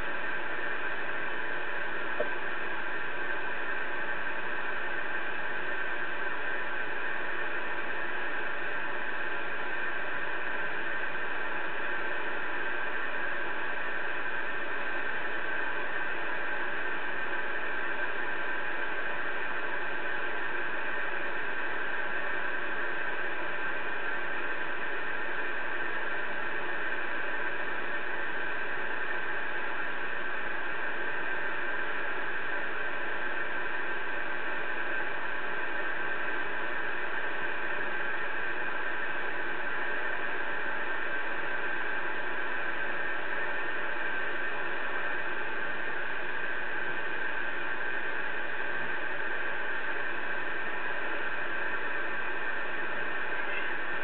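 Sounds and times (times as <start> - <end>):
radio static hiss: 0.0 - 54.0.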